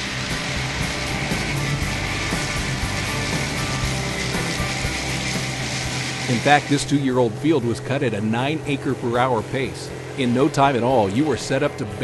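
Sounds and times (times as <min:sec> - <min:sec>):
background music: 0:00.0 - 0:12.0
cutting head mowing crop: 0:00.0 - 0:12.0
low engine hum: 0:00.0 - 0:12.0.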